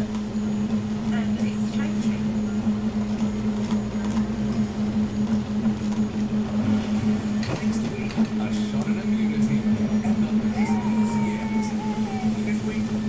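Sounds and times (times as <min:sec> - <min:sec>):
three d printer humming: 0:00.0 - 0:13.0
faint talk: 0:07.6 - 0:13.0.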